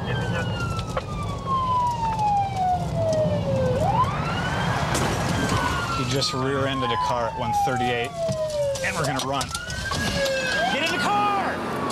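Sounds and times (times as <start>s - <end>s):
car engine and tyres rumbling: 0.0s - 11.9s
police siren wailing: 0.0s - 11.9s.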